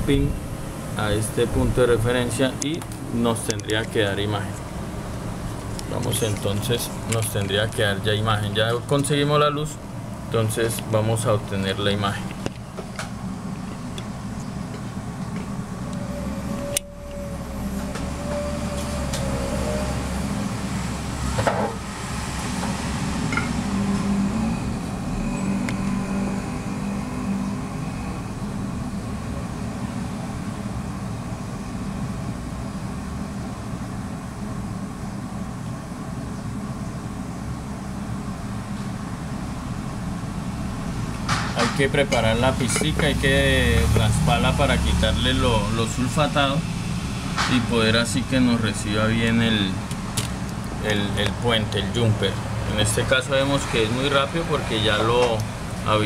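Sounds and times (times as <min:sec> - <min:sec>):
low background rumble: 0:00.0 - 0:17.9.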